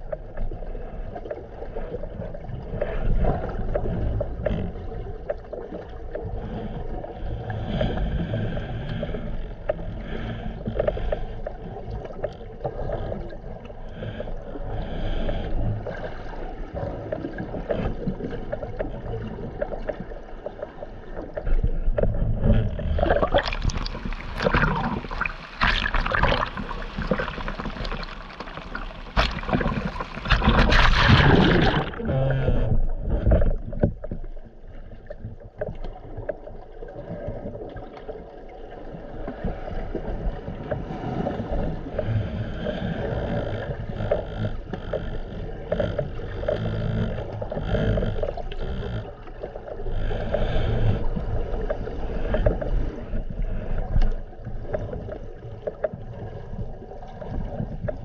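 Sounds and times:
underwater swell rumble: 0.0s - 58.0s
small waves splashing: 9.1s - 32.4s.

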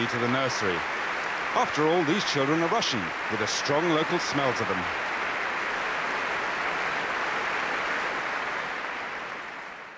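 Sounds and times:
audience applauding: 0.0s - 9.9s.

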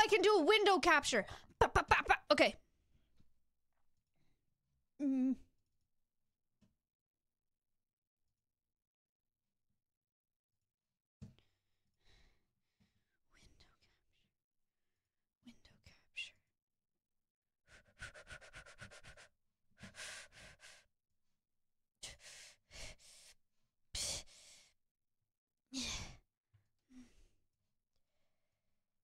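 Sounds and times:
person mumbling: 5.0s - 5.4s
person breathing and sighing: 5.0s - 5.5s, 25.7s - 26.3s, 26.9s - 27.4s.

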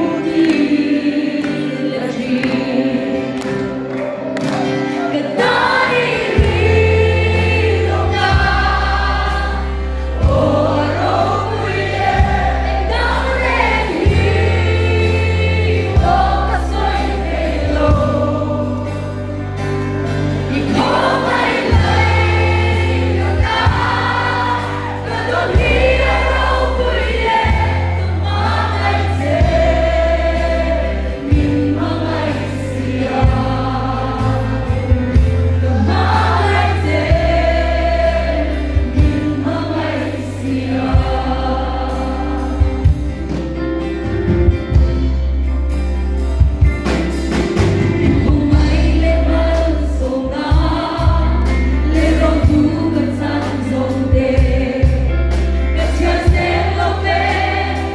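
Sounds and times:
woman singing into a microphone: 0.0s - 3.8s, 48.0s - 57.9s
guitars: 0.0s - 57.9s
drum kit: 4.2s - 57.9s.

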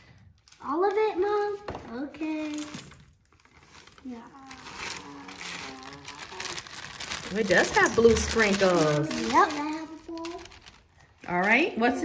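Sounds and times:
child's wordless voice: 0.6s - 2.9s, 4.0s - 6.8s, 8.2s - 11.0s
plastic bag crinkling: 2.4s - 12.0s.

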